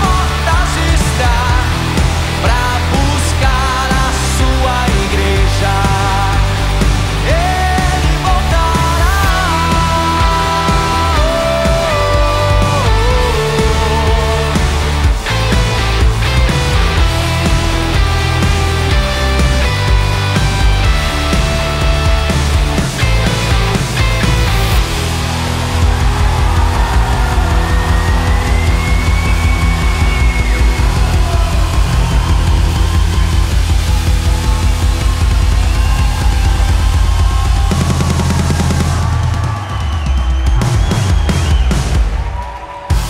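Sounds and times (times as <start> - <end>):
electric guitar: 0.0 - 39.8
bass guitar: 0.0 - 43.0
drums: 0.0 - 43.0
rock band playing: 0.0 - 43.0.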